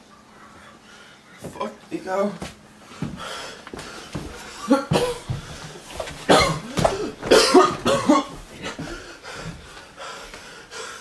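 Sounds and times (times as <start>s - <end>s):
person making breathy coughing sounds: 4.6s - 5.6s, 6.2s - 9.0s.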